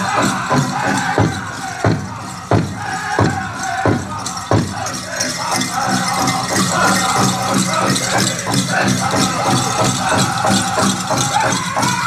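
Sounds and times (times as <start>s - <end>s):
high rattle: 0.0s - 12.0s
high-pitched group singing: 0.0s - 12.0s
large drum beats: 0.0s - 12.0s.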